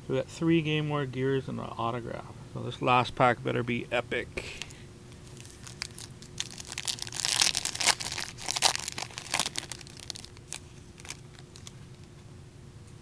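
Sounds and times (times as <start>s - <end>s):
foil wrapper tearing and crinkling: 5.3s - 11.8s.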